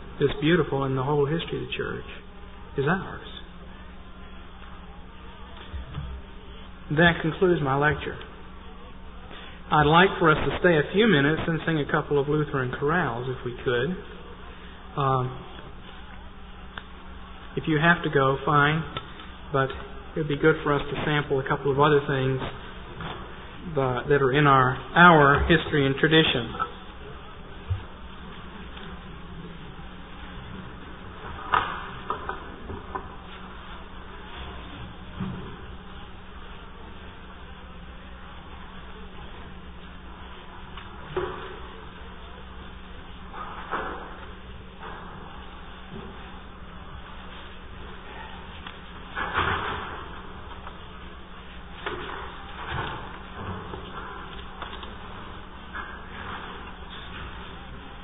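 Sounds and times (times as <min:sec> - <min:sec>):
audience rustles and bumps: 0:00.0 - 0:58.0
buzzy electrical hum: 0:00.0 - 0:58.0.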